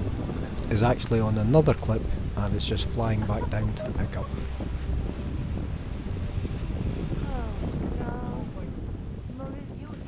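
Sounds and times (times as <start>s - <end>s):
low rumble: 0.0s - 10.0s
wind buffeting microphone: 0.0s - 10.0s.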